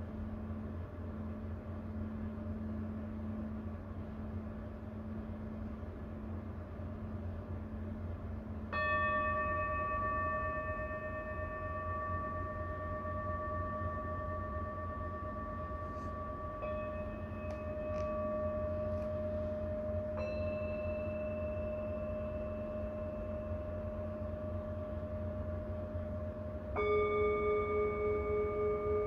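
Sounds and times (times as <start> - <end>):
singing bowl struck with mallet: 8.7 - 29.0.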